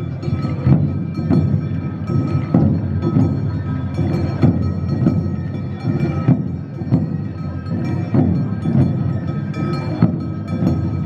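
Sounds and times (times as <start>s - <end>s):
clanging metal hand gong: 0.0s - 11.0s
street band drums: 0.0s - 11.0s.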